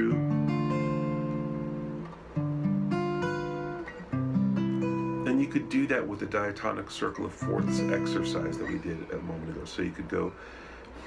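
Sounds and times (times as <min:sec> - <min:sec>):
acoustic guitar chords ringing: 0:00.0 - 0:10.7.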